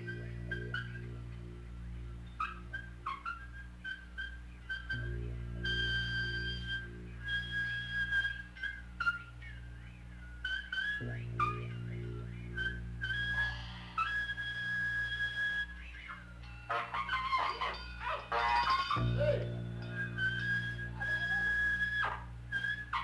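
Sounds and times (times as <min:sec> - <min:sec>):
flute-like wind instrument: 0:00.0 - 0:23.0
steady low drone: 0:00.0 - 0:23.0.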